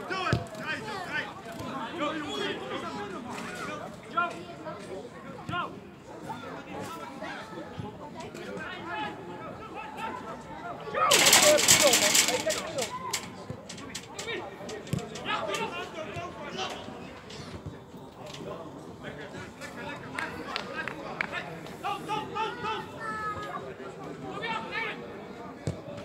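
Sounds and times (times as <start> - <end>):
people calling out and chattering: 0.0 - 26.0.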